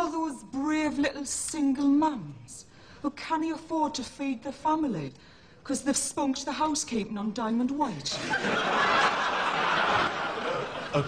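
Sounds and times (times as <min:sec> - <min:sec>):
studio audience laughing: 0:08.2 - 0:11.0.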